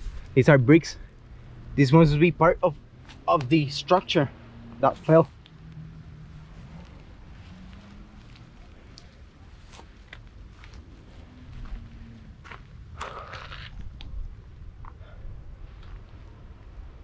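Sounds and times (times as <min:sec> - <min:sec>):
low steady rumble: 0:00.0 - 0:17.0
foot scraping: 0:06.5 - 0:13.8
footsteps crunching on stones: 0:06.7 - 0:13.8.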